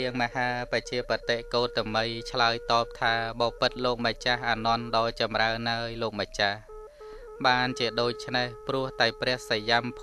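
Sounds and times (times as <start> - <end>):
man narrating: 0.0 - 6.7, 7.4 - 10.0
background music with held tones: 0.0 - 10.0.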